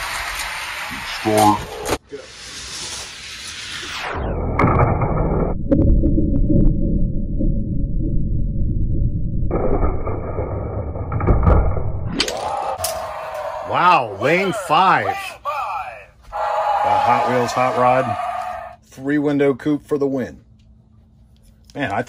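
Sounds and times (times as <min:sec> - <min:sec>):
slowed deep muffled rumble: 0:05.1 - 0:12.1.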